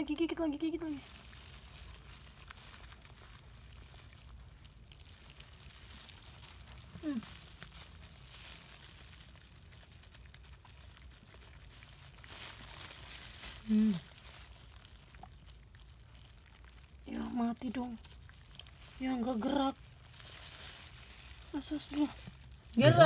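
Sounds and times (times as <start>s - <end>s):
plastic gloves crinkling: 0.0s - 23.0s.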